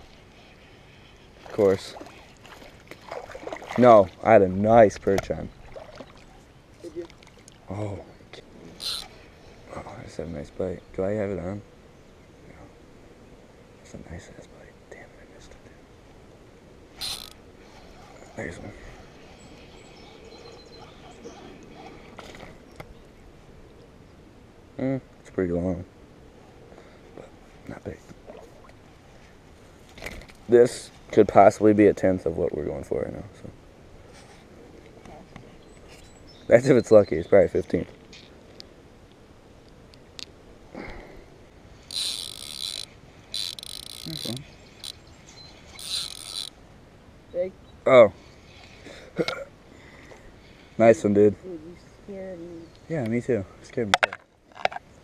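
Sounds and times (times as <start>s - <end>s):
fishing reel whirring: 8.8s - 9.2s, 17.0s - 20.4s, 41.8s - 45.0s, 45.6s - 46.6s
faint high bird chirps: 19.0s - 21.6s.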